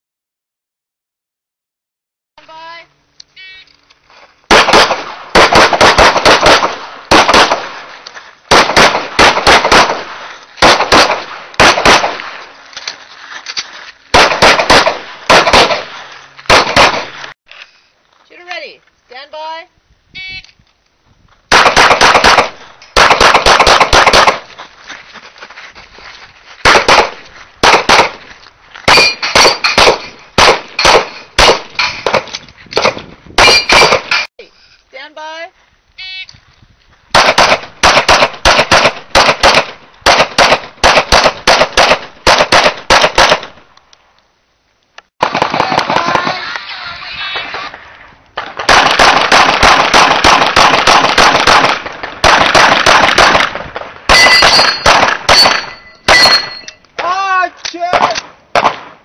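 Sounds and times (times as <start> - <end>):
rapid handgun shots: 4.5 - 12.4, 14.1 - 17.2, 21.5 - 24.5, 26.6 - 28.2, 28.9 - 34.3, 37.1 - 43.6, 45.2 - 46.4, 48.4 - 56.6
steel plate targets ringing: 28.9 - 29.8, 33.4 - 34.3, 54.1 - 56.8.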